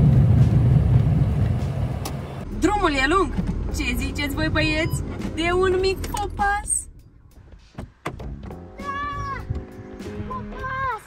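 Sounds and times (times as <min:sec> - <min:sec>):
background music with held notes: 0:06.9 - 0:11.0.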